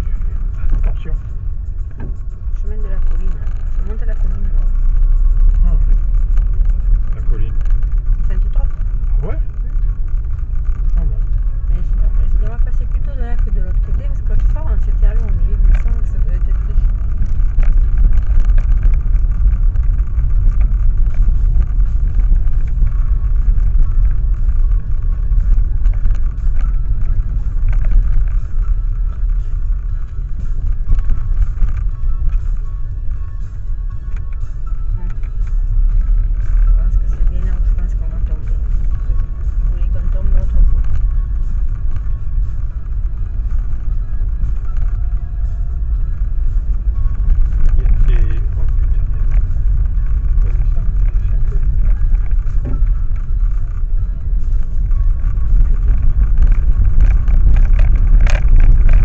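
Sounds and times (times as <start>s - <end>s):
engine and tyre rumble: 0.0s - 59.0s.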